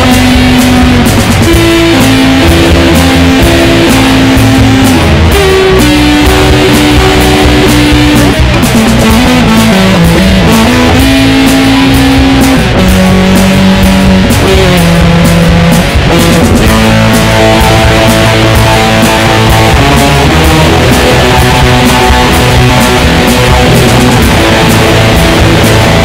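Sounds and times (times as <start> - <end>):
bass and drums: 0.0 - 26.0
electric guitar solo: 0.0 - 26.0.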